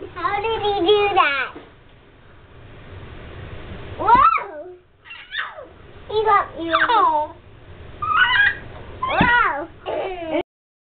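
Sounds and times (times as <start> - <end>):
small child squealing: 4.2 - 5.7, 8.0 - 10.1.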